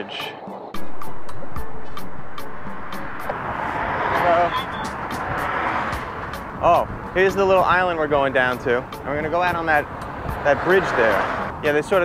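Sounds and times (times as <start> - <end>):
highway traffic road noise: 0.8 - 12.0.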